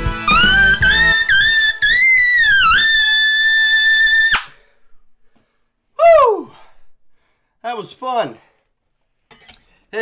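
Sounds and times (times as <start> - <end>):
trumpet holding high note: 0.0 - 4.3.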